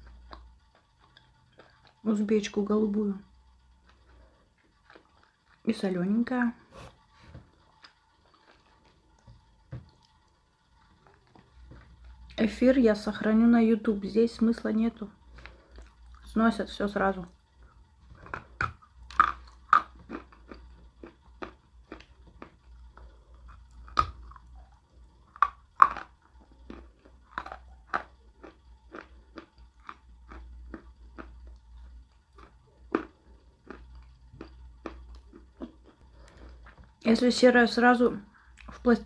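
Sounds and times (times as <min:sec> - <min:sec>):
crunchy clay being chewed: 0:00.0 - 0:02.1, 0:03.8 - 0:05.7, 0:07.5 - 0:09.3, 0:15.4 - 0:16.3, 0:18.1 - 0:37.0.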